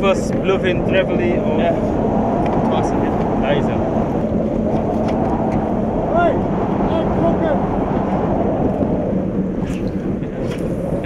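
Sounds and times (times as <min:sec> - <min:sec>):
boat engine running: 0:00.0 - 0:11.0
wind buffeting microphone: 0:00.0 - 0:11.0.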